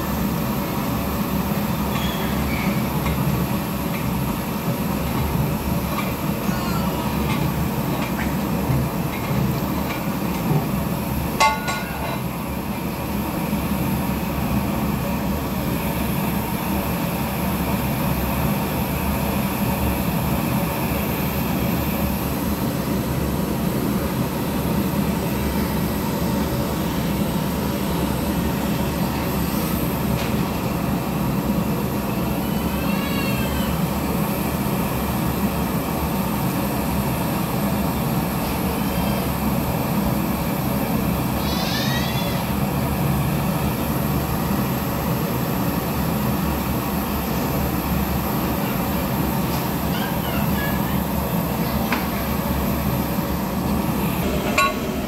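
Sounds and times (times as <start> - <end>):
gas burner roaring: 0.0 - 55.0
metallic clank: 11.4 - 12.3, 54.4 - 55.0.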